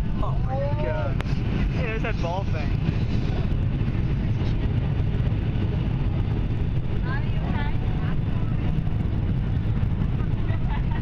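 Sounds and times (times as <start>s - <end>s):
airliner cabin engine rumble: 0.0s - 11.0s.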